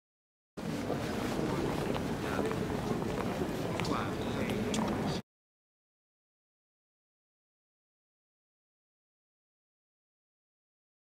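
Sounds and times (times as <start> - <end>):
low outdoor rumble: 0.6 - 5.2
wind on microphone: 0.6 - 5.2.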